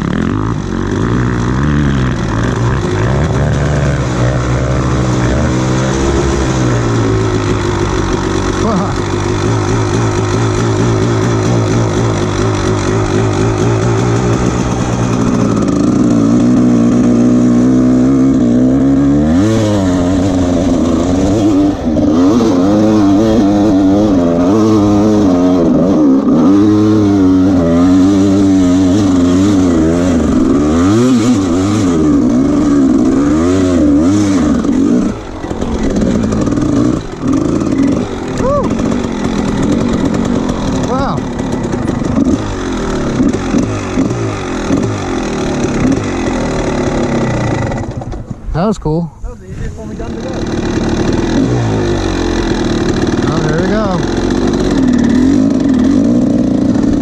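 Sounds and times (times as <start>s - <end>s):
dirt bike engine revving: 0.0s - 48.7s, 49.7s - 57.0s.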